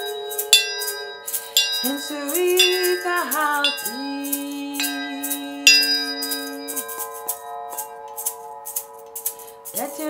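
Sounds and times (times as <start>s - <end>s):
hard chime strike: 0.0s - 9.0s
tubular chimes ringing: 0.0s - 10.0s.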